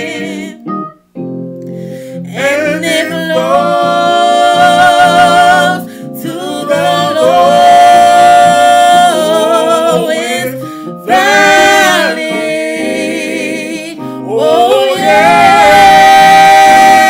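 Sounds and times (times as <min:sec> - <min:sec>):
woman singing: 0:00.0 - 0:00.6, 0:02.3 - 0:17.0
man singing: 0:02.3 - 0:17.0.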